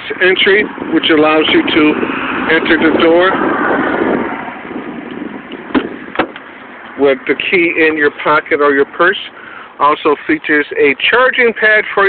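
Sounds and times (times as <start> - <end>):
car door lock clicks: 5.1 - 6.5.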